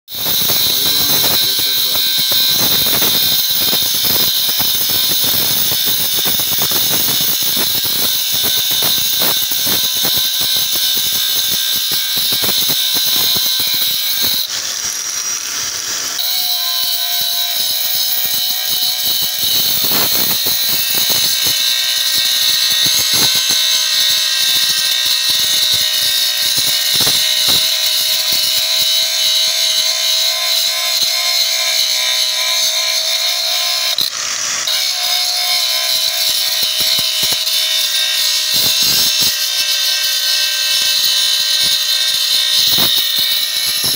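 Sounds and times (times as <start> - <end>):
angle grinder grinding metal: 0.1 - 43.9.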